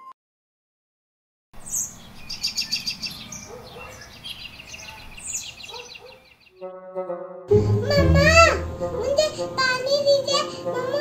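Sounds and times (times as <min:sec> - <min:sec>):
birds chirping and twittering: 0:01.6 - 0:06.6
child calling out: 0:07.8 - 0:09.8.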